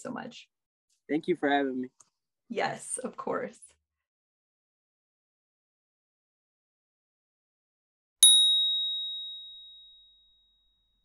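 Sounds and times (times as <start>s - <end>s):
bright bell ding: 8.2s - 10.8s.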